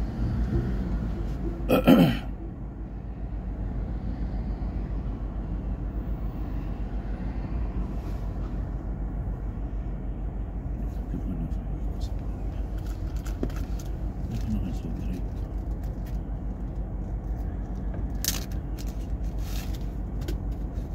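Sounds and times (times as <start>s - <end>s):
car engine idling: 8.5s - 20.9s.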